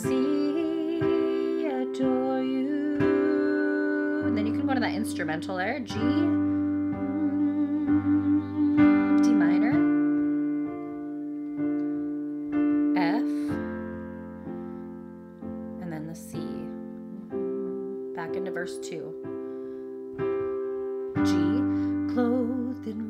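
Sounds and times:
piano chords: 0:00.0 - 0:23.0.

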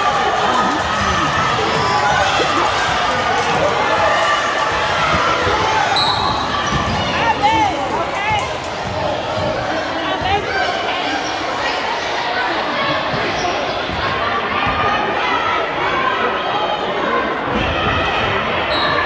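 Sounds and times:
crowd chatter echoing: 0:00.0 - 0:19.0
whistle blast: 0:05.9 - 0:06.4.

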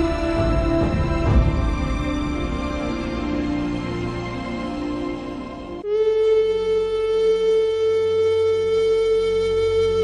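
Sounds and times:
held flute-like note: 0:05.8 - 0:10.0.

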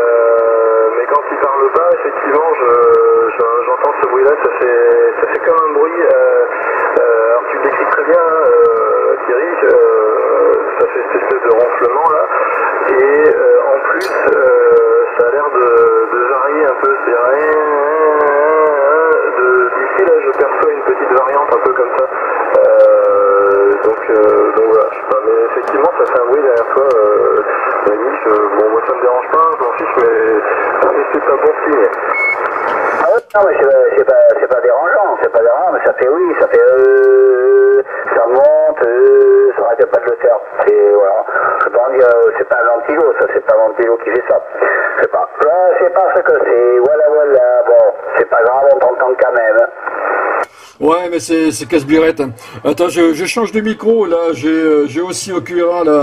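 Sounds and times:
thin voice over radio: 0:10.1 - 0:16.3.

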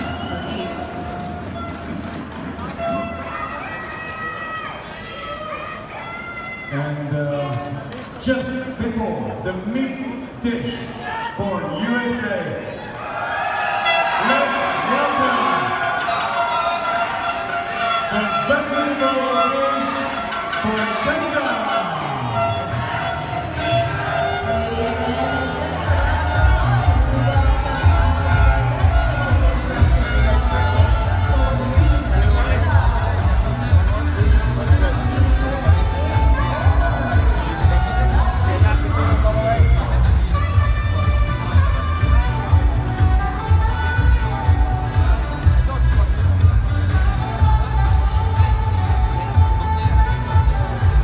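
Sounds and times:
music: 0:00.0 - 0:04.7, 0:13.3 - 0:51.0
crowd chatter: 0:00.0 - 0:51.0.

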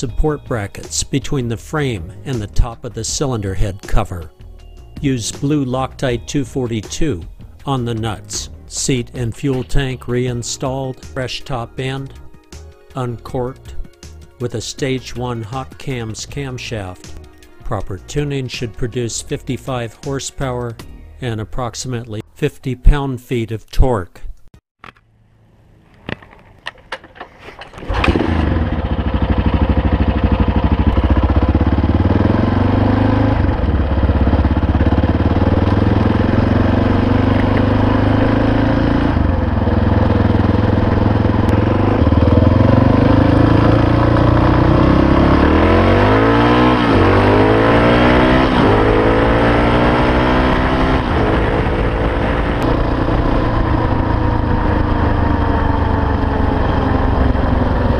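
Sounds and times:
motorcycle engine revving: 0:26.8 - 0:57.9.

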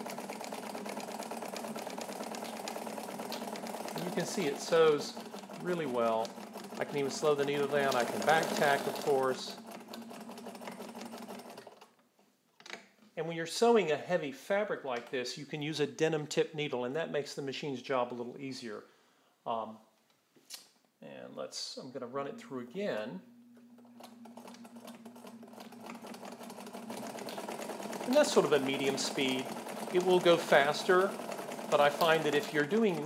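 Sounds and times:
sewing machine stitching: 0:00.0 - 0:11.9, 0:23.8 - 0:33.0.

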